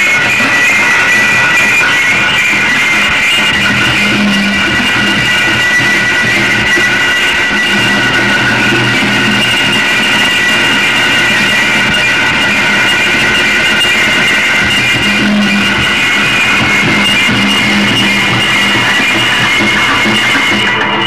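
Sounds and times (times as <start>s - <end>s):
distorted electronic noise music: 0.0s - 21.0s.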